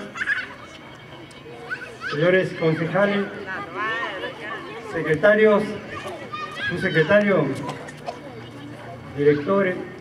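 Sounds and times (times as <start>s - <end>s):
low background hum of gathering: 0.0s - 10.0s.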